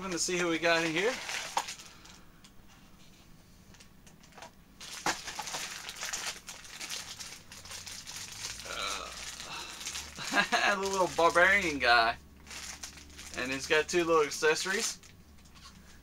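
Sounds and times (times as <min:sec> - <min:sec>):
plastic wrapper crinkling: 0:00.0 - 0:02.2, 0:04.2 - 0:11.8, 0:12.4 - 0:15.6.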